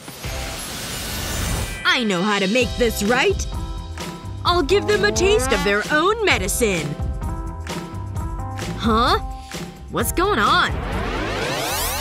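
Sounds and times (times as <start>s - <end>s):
background music: 1.8s - 12.0s
person speaking: 4.5s - 6.0s.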